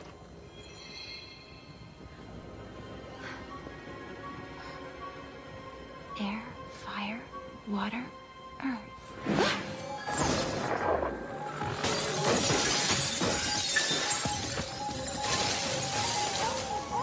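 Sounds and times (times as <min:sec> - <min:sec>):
orchestral music: 0:00.0 - 0:17.0
ice crystals shattering: 0:11.5 - 0:17.0.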